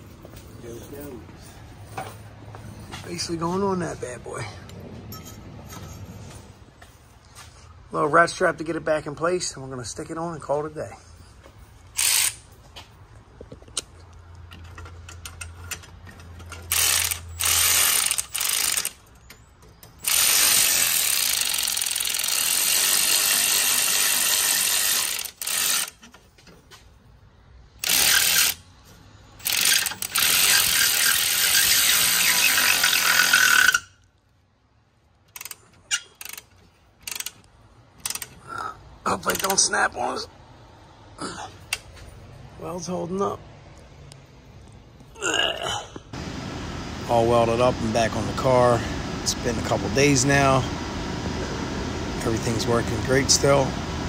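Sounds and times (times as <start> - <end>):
cordless electric ratchet running: 11.9 - 12.4, 16.6 - 19.0, 20.0 - 26.0, 27.8 - 28.6, 29.4 - 33.9, 36.2 - 37.4.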